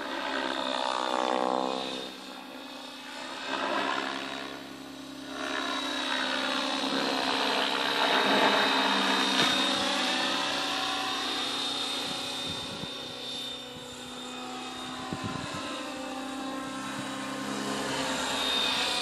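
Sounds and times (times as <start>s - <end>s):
rc helicopter motor whine: 0.0s - 19.0s.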